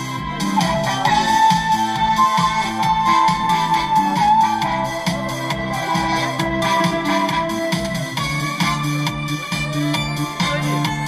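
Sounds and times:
steady beat: 0.0s - 11.0s
wavering keyboard lead melody: 0.0s - 11.0s.

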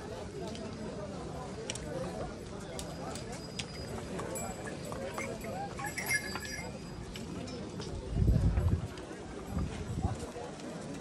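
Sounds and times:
crowd chatter: 0.0s - 11.0s
hooves clip-clopping on stone: 2.7s - 11.0s.

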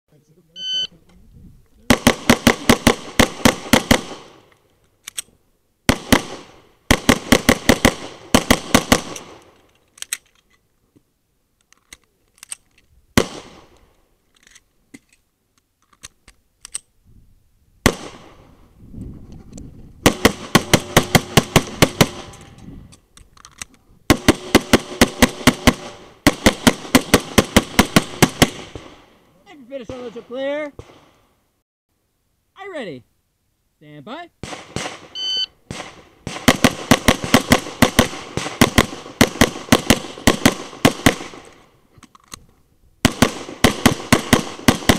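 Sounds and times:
shot timer beep: 0.6s - 0.9s, 35.2s - 35.6s
pistol firing rapid shots: 1.9s - 4.4s, 5.9s - 9.4s, 20.0s - 22.3s, 24.1s - 28.9s, 34.4s - 35.1s, 35.7s - 41.4s, 43.0s - 44.9s.

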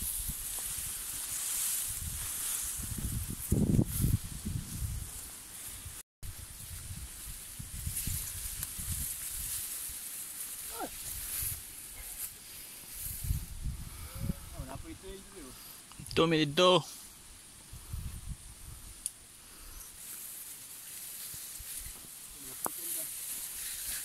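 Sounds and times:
wind buffeting microphone: 1.9s - 5.2s, 13.0s - 15.2s, 17.7s - 19.0s
steady high hiss: 4.9s - 24.0s.

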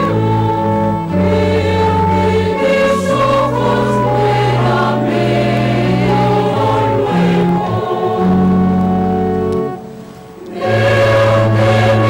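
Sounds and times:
choir singing a hymn: 0.0s - 12.0s.

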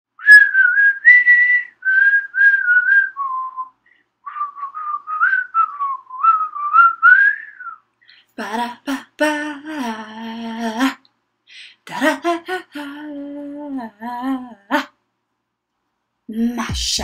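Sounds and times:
person whistling a lively tune: 0.2s - 7.8s.

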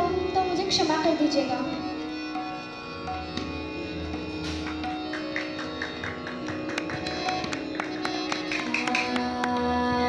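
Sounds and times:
harmonium drone: 0.0s - 10.0s
tabla taps and strokes: 4.4s - 9.8s.

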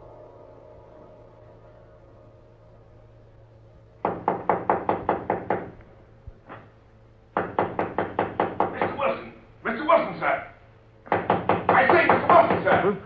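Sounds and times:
low steady hum: 0.0s - 13.0s
rapid knocking on door: 4.0s - 5.8s, 7.3s - 9.2s, 11.0s - 13.0s.

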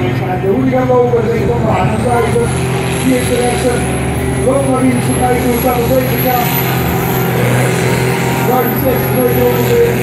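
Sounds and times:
diesel tractor engine under load: 0.0s - 10.0s
high engine whine: 0.0s - 10.0s.

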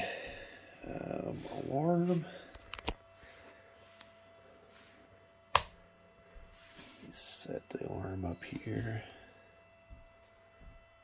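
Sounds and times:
switch click: 5.5s - 5.8s.

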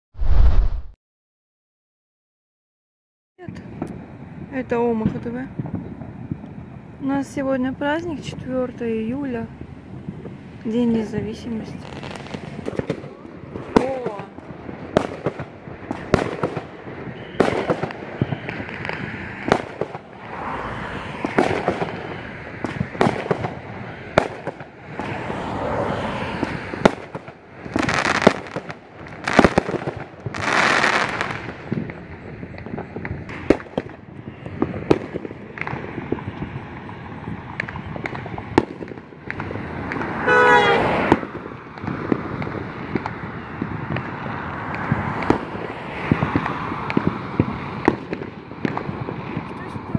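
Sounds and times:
fireworks bangs and pops: 3.5s - 6.9s, 8.1s - 49.9s
fireworks crackling: 3.5s - 49.9s.

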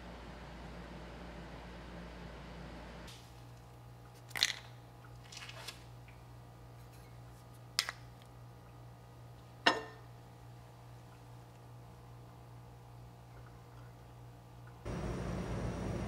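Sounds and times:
low steady hum: 5.9s - 16.0s.

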